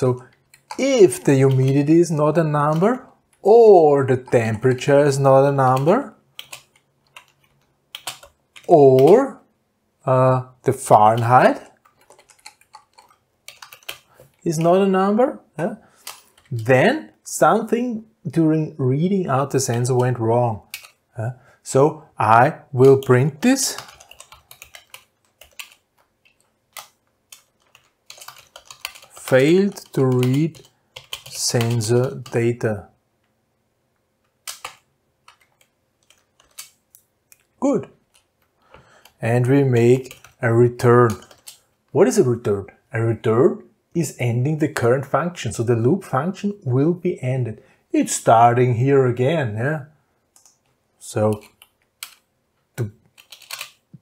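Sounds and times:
computer keyboard typing: 0:00.0 - 0:09.3, 0:10.8 - 0:14.9, 0:16.0 - 0:16.7, 0:19.4 - 0:21.0, 0:22.8 - 0:32.6, 0:34.3 - 0:41.9, 0:50.3 - 0:52.3, 0:53.0 - 0:54.0.

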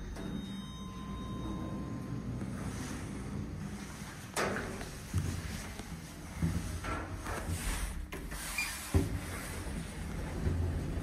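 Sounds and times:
elevator doors sliding open: 0:00.0 - 0:11.0.

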